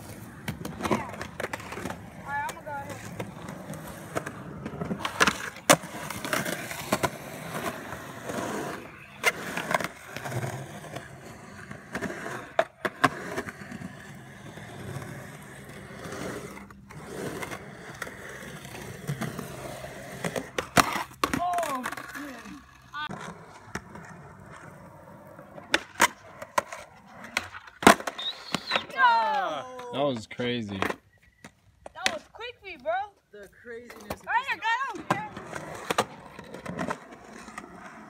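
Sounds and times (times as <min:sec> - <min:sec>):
skateboard clacking on ground: 0:00.0 - 0:15.7, 0:16.4 - 0:33.0, 0:33.8 - 0:38.0
skateboard wheels rolling on concrete: 0:00.0 - 0:38.0.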